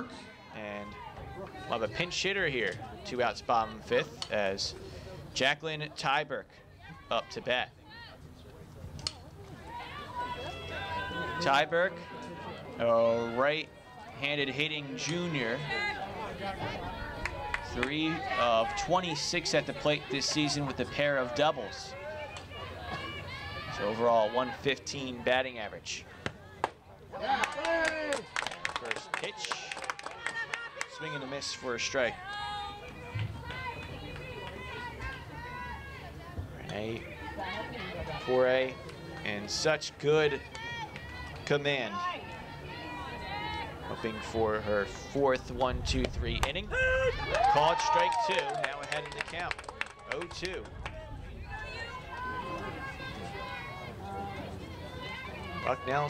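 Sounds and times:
players calling and chanting: 0:00.0 - 0:49.4, 0:50.1 - 0:56.0.

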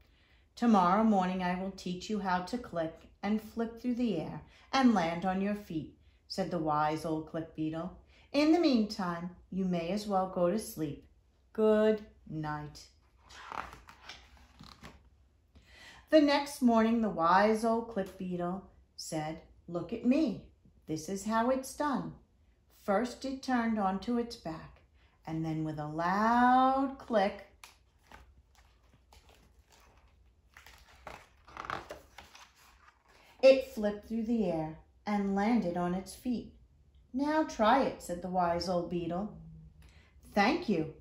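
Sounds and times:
paper page rustling: 0:13.0 - 0:15.1, 0:27.6 - 0:33.4
light ticks of page laid flat: 0:27.6 - 0:31.2.

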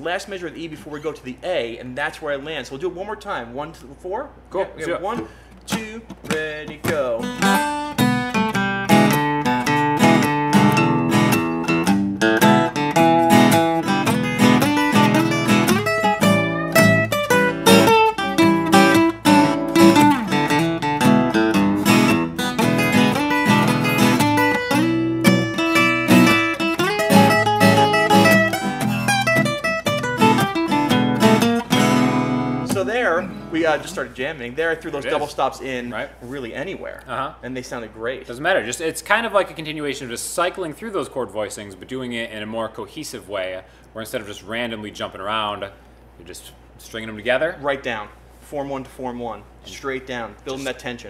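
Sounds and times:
acoustic guitar strumming chords: 0:04.7 - 0:34.2
acoustic guitar solo: 0:05.2 - 0:34.2.

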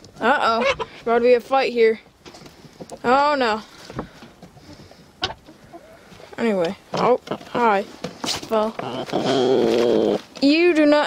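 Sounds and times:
hens clucking: 0:00.2 - 0:01.4, 0:02.2 - 0:10.5.

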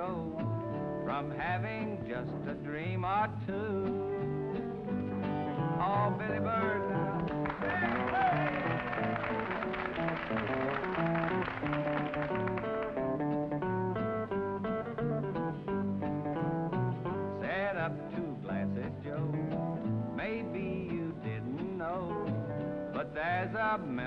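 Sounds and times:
rhythm guitar and bass: 0:00.0 - 0:24.0
electric lead guitar solo: 0:04.0 - 0:17.4.

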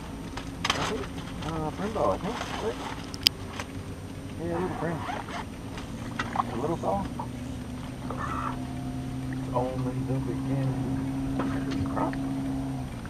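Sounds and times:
low hum: 0:00.0 - 0:13.0
indistinct low voices: 0:00.6 - 0:03.0, 0:04.3 - 0:13.0.

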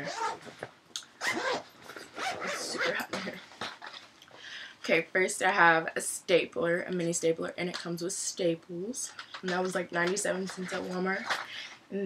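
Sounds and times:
backpack rustling: 0:00.0 - 0:04.1
woman speaking: 0:02.5 - 0:03.4, 0:04.8 - 0:12.0.

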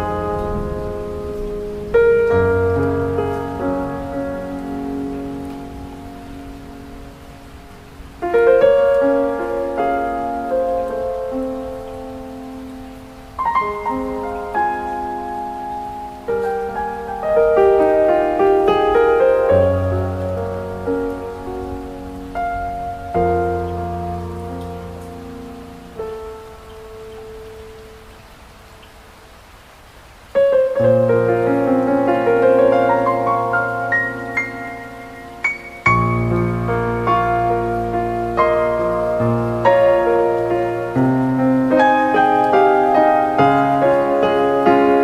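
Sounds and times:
piano chord: 0:00.0 - 0:28.8, 0:30.3 - 0:45.0
rain hiss: 0:00.0 - 0:45.0.

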